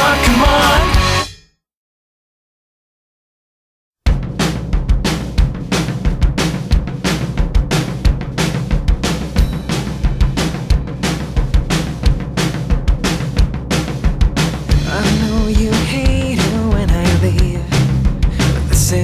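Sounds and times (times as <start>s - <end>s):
bass guitar: 0.0s - 1.4s, 4.1s - 19.0s
drum kit playing fast beat: 0.0s - 1.4s, 4.1s - 19.0s.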